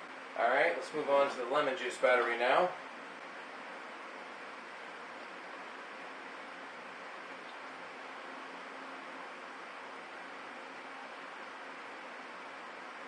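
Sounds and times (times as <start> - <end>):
low hiss of room tone: 0.0 - 13.0.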